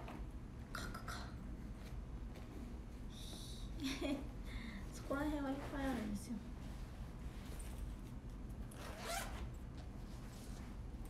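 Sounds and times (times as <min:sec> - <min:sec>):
zipper unzipping: 0:08.7 - 0:09.5.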